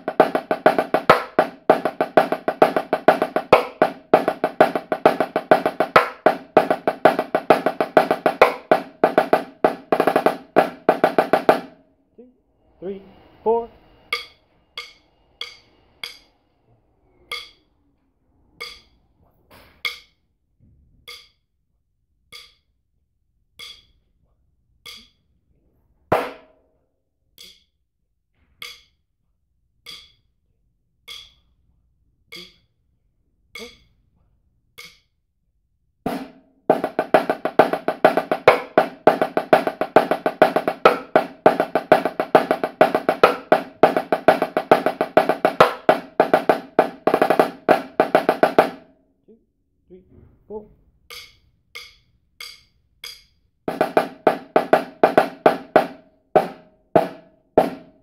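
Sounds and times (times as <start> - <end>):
marching snare drum rolls: 0.0 - 11.8, 36.1 - 48.9, 53.7 - 58.0.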